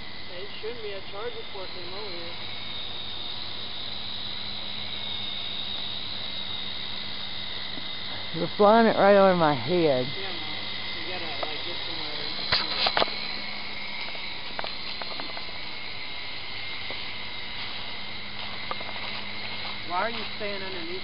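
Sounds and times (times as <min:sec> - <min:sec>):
toy helicopter whine: 0:00.0 - 0:21.0.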